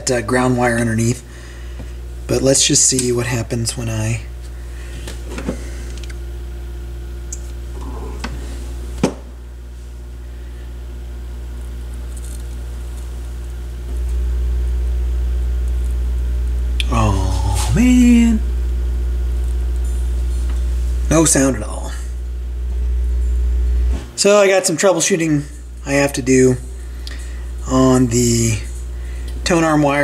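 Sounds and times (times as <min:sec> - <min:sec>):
amplifier mains hum: 0:00.0 - 0:30.0
person humming gliding pitch: 0:07.7 - 0:08.4, 0:16.8 - 0:17.8.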